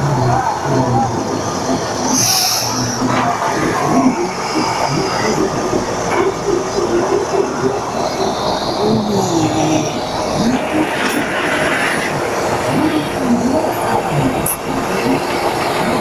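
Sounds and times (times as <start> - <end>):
indistinct voices: 0.0 - 16.0
loud street traffic: 0.0 - 16.0.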